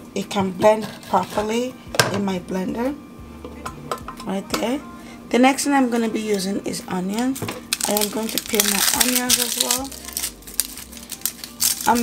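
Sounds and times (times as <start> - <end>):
onion skin crackling: 7.1 - 12.0.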